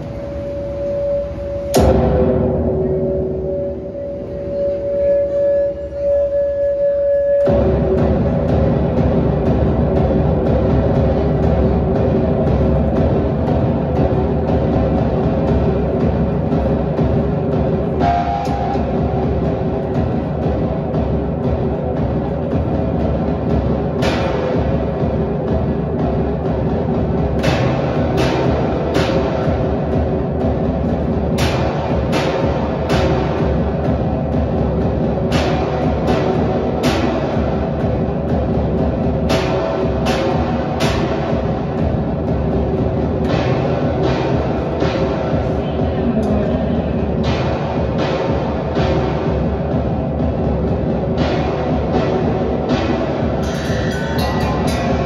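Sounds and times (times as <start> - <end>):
low sustained drone: 0.0 - 35.0
sharp struck hits: 1.7 - 5.1, 51.2 - 55.0.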